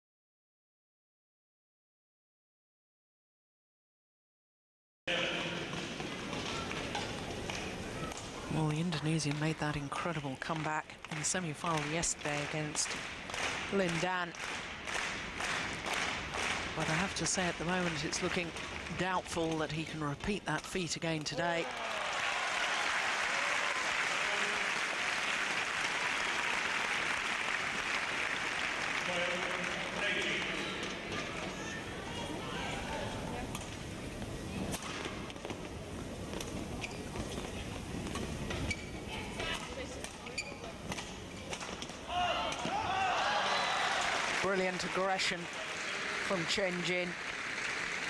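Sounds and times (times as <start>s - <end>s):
court sounds: 5.1s - 48.0s
arena crowd voices: 21.5s - 35.0s, 39.2s - 48.0s.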